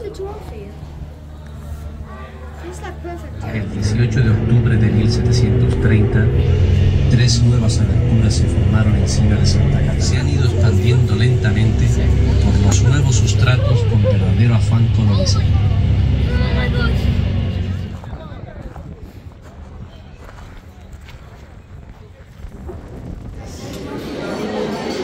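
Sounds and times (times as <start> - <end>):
vehicle engine and road rumble: 2.8 - 23.8
person speaking: 3.4 - 17.4
music playing: 3.4 - 18.1.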